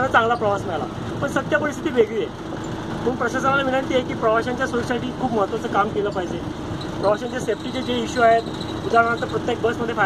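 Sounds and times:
man talking excitedly: 0.0 - 2.4, 3.0 - 6.4, 7.0 - 10.0
bus engine hum: 0.0 - 10.0.

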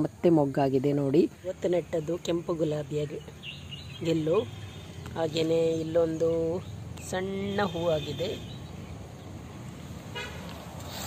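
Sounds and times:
vehicle horn toot: 7.4 - 8.7, 10.1 - 10.5.

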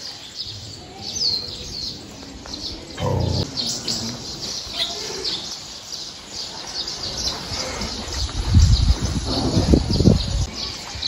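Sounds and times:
songbirds chirping: 0.0 - 11.0.

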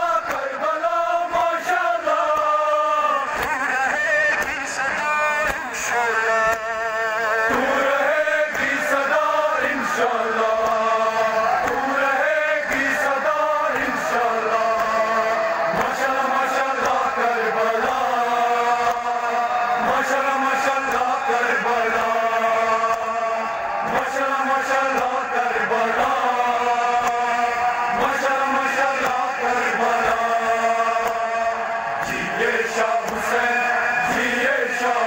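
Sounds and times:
men chanting over loudspeaker: 0.0 - 35.0.

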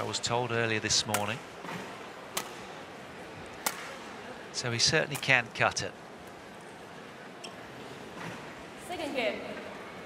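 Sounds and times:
racket hitting shuttlecock: 1.1 - 2.7, 3.6 - 4.1.

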